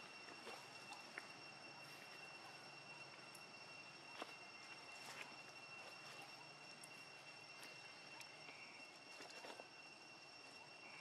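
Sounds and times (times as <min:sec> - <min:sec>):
high-pitched whine: 0:00.0 - 0:11.0.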